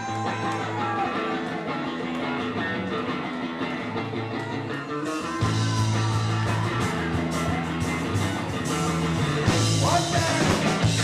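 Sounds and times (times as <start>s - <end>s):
electric guitar: 0.0s - 11.0s
live ska punk band: 0.0s - 11.0s.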